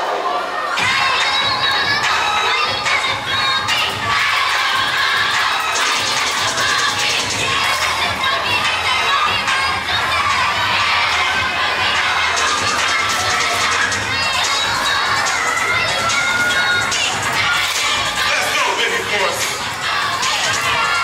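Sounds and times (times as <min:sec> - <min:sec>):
children shouting and cheering: 0:00.0 - 0:21.0.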